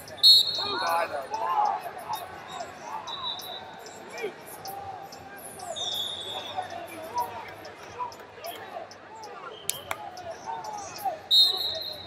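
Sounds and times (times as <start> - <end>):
referee whistle: 0.0 - 1.1, 3.0 - 3.8, 5.6 - 6.8, 11.3 - 12.0.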